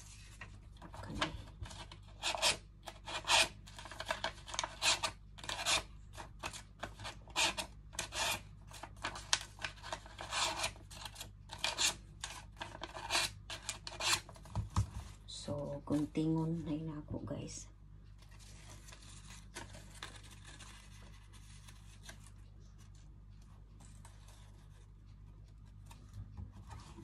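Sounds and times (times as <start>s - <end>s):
paper scrunching and rustling: 18.2s - 23.0s.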